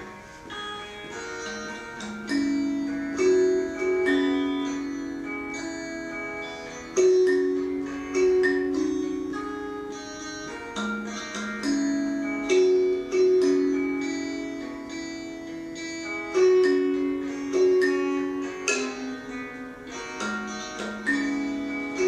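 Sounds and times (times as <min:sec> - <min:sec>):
kalimba plucked notes: 0:01.0 - 0:22.0.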